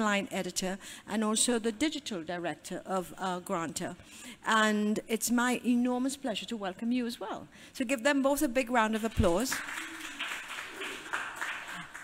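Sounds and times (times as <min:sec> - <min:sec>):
audience applauding: 0:09.5 - 0:12.0.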